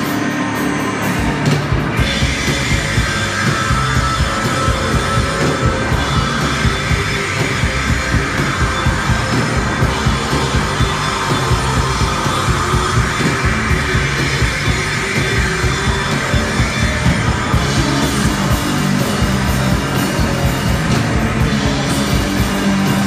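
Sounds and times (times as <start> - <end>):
bass guitar: 0.0 - 23.0
loud electric guitars: 0.0 - 23.0
steady drum beat: 0.0 - 23.0.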